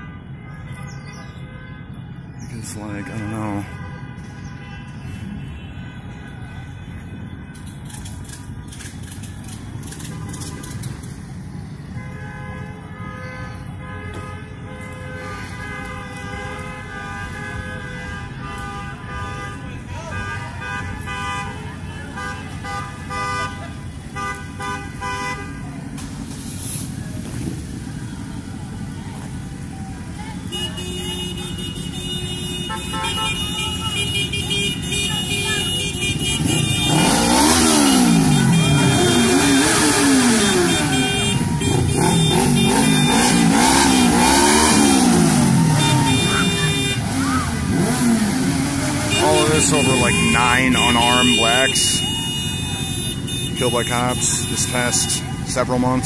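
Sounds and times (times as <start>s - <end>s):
vehicle horns honking: 0.0s - 8.2s, 9.8s - 11.1s, 11.8s - 25.7s, 30.2s - 56.0s
motorcycle engines revving: 6.9s - 12.3s, 14.8s - 56.0s.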